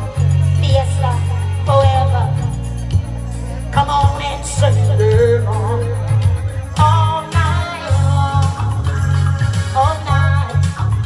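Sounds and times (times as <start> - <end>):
woman singing: 0.0 - 3.1, 3.7 - 11.0
amplified band playing: 0.0 - 11.0
drums: 0.0 - 11.0
pulsing bass line: 0.0 - 11.0.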